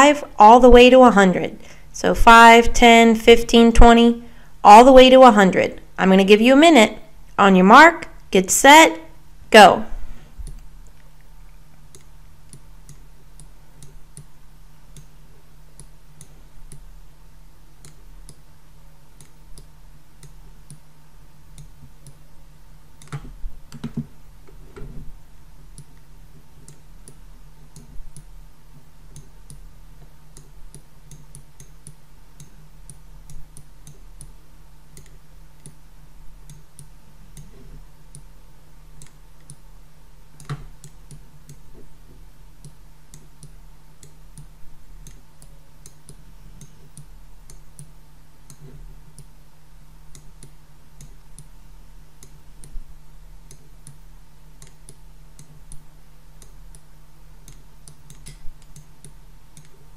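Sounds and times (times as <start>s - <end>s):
low electrical hum: 0.0s - 59.9s.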